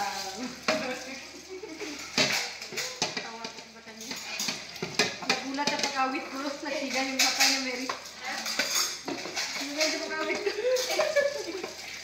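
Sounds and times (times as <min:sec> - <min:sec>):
dishes and cutlery clinking: 0:00.0 - 0:12.0.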